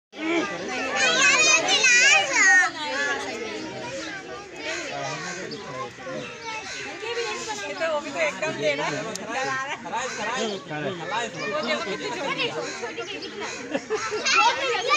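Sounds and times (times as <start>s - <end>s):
children chattering: 0.1s - 14.9s
children squealing excitedly: 13.4s - 14.9s.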